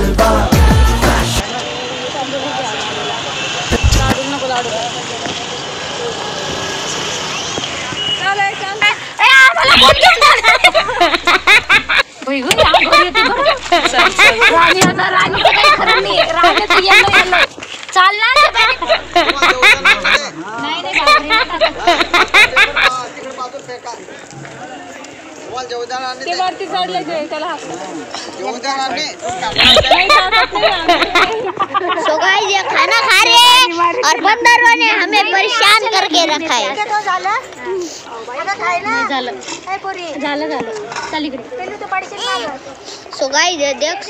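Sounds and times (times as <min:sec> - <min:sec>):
background music: 0:00.0 - 0:01.4
traffic noise: 0:01.2 - 0:44.0
people talking in background: 0:01.4 - 0:44.0.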